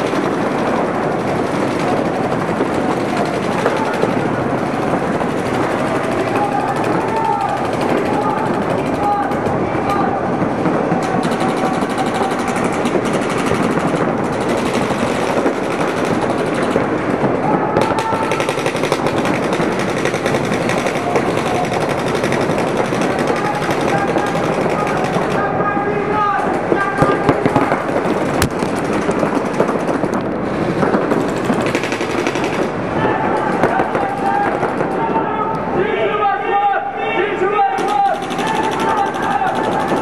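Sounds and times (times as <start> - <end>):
people shouting: 0.0 - 16.2, 17.3 - 28.1, 32.3 - 40.0
paintball markers firing: 17.8 - 25.4, 27.0 - 32.7, 37.7 - 40.0.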